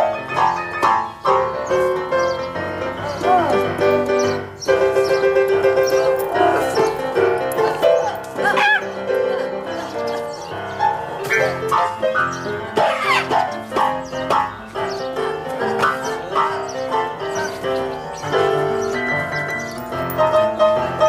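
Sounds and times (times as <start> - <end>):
blues piano: 0.0 - 21.0
squeaky animal calls: 5.9 - 11.6, 12.3 - 13.5.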